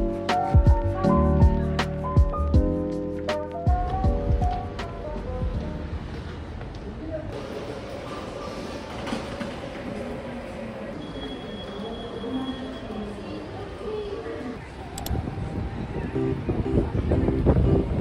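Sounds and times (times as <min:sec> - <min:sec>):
murmur of voices: 0:06.8 - 0:18.0.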